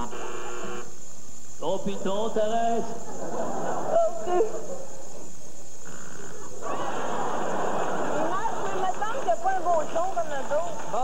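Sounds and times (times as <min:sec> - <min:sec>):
electronic buzzer tone: 0:00.0 - 0:01.0.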